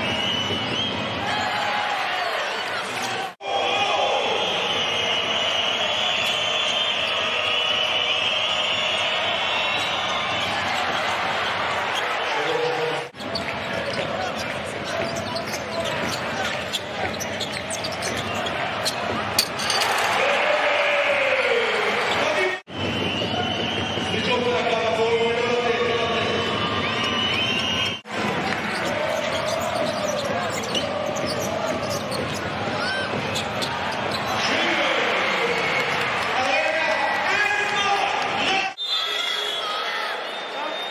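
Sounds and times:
sneaker squeaks: 4.9 - 19.8, 26.5 - 34.8
crowd hubbub: 28.0 - 34.9
basketball dribbling: 28.3 - 34.4.

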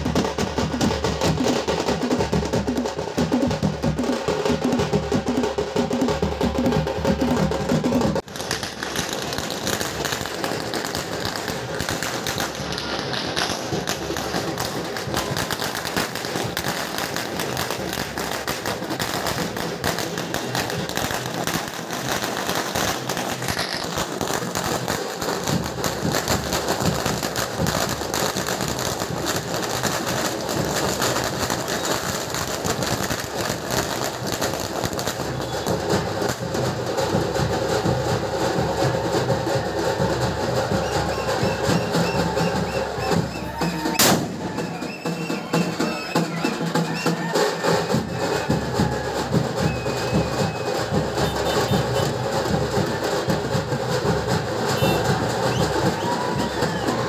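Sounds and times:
firecrackers crackling: 0.0 - 57.0.

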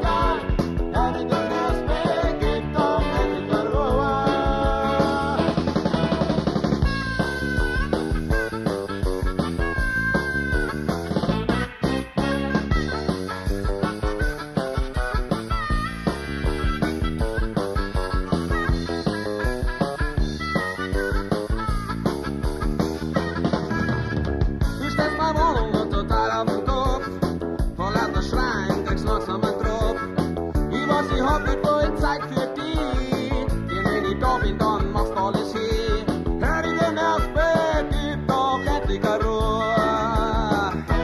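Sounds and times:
man singing: 0.0 - 6.4, 24.7 - 41.0
bass guitar: 0.0 - 41.0
drums steady beat: 0.0 - 41.0
electric guitars: 0.0 - 41.0
piano: 0.0 - 41.0.

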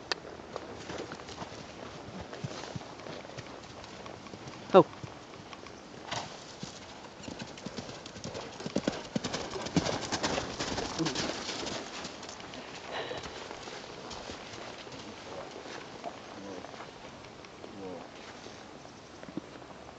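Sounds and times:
horse hooves on sand: 0.0 - 19.9.

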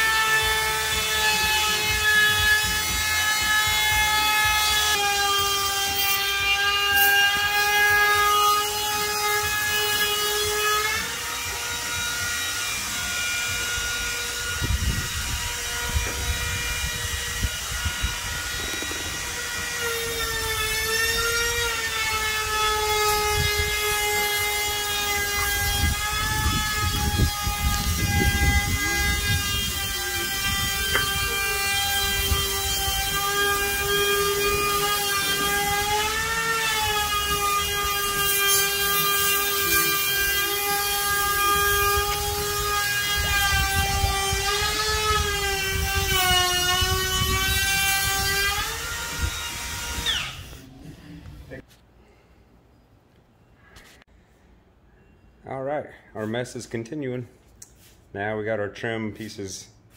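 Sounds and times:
router cutting wood: 0.0 - 50.7.

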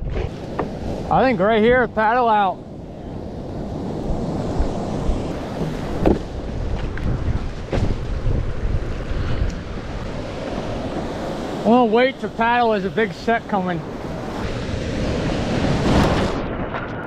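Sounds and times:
surf breaking: 0.0 - 17.0
wind on microphone: 0.0 - 17.0
whitewater rushing: 9.6 - 16.4.

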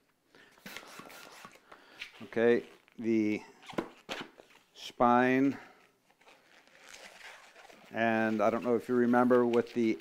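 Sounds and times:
small clicks and rubber sounds: 5.8 - 10.0.

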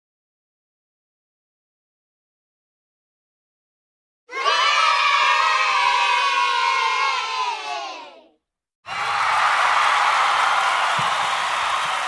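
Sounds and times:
children cheering and shouting: 4.3 - 8.3, 8.9 - 12.0.

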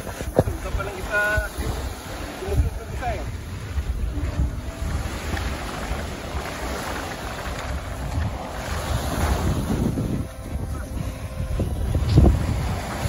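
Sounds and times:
small waves washing on shore: 0.0 - 13.0
wind buffeting microphone: 0.0 - 13.0.

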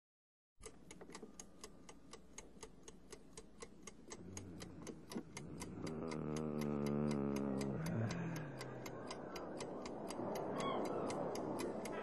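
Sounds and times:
clock-like ticking: 0.6 - 12.0.

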